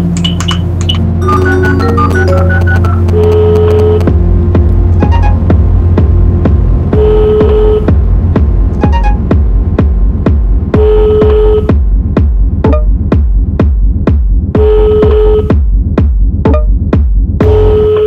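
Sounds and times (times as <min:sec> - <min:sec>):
sustained synth tone: 0:00.0 - 0:08.0, 0:08.8 - 0:09.4
pulsing bass: 0:00.0 - 0:18.0
held organ-like chord: 0:01.2 - 0:03.9
kick drum: 0:04.0 - 0:18.0.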